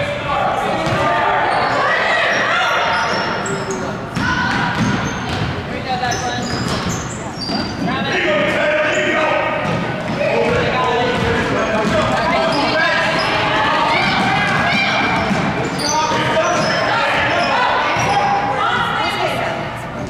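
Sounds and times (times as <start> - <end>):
people shouting in echoing gym: 0.0 - 19.8
basketball dribbling on hardwood: 9.6 - 12.3.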